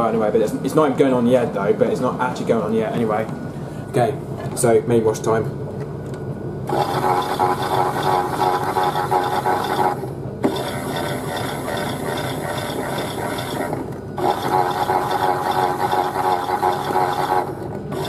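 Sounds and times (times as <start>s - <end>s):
toy washing machine gear whir: 6.7s - 18.0s.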